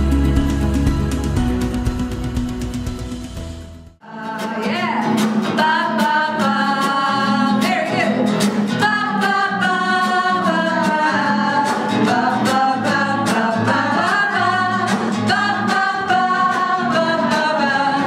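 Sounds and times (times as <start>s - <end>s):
strummed acoustic guitar: 0.0s - 18.0s
women singing together: 4.0s - 18.0s.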